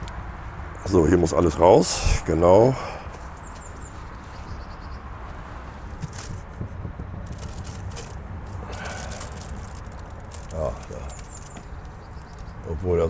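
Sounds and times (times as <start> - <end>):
low background rumble: 2.9 - 13.0
bird chirping: 3.2 - 13.0
soft handling noises: 5.2 - 12.6.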